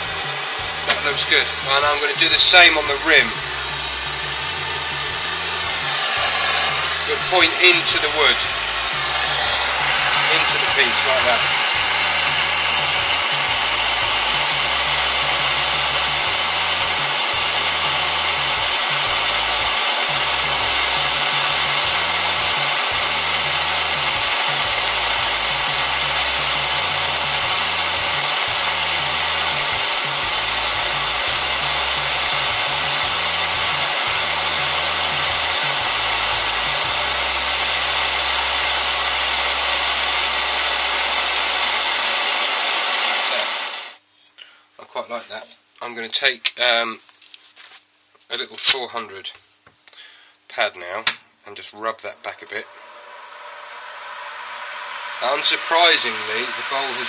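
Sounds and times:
blowtorch flame hissing: 0:00.0 - 0:44.0, 0:52.0 - 0:57.0.

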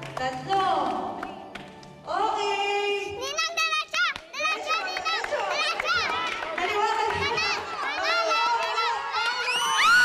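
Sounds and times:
children shouting and squealing: 0:07.2 - 0:10.0.

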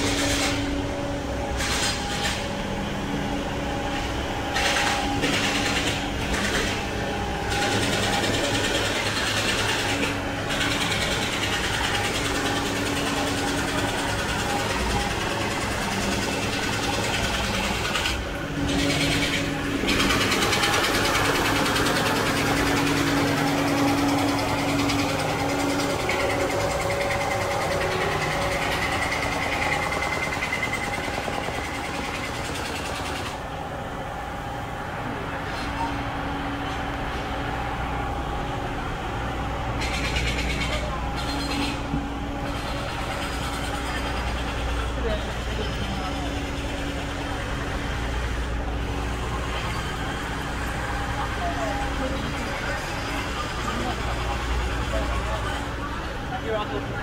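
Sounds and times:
engine humming: 0:00.0 - 0:57.0
high steady whine: 0:00.0 - 0:57.0
street traffic noise: 0:00.0 - 0:57.0.

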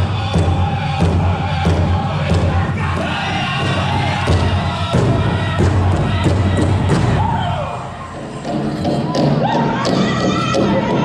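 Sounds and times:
big drum beat: 0:00.0 - 0:11.0
drum group singing: 0:00.0 - 0:11.0.

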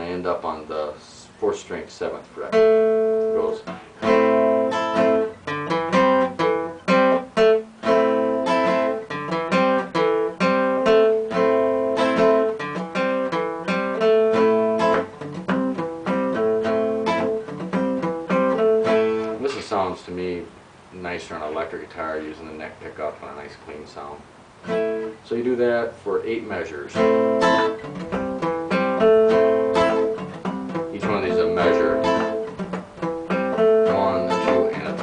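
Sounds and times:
acoustic guitar blues riff: 0:00.0 - 0:35.0.

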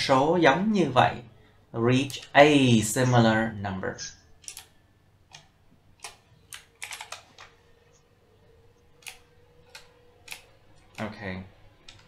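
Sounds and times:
computer keyboard typing: 0:04.4 - 0:04.7, 0:05.3 - 0:07.7, 0:08.8 - 0:11.2.

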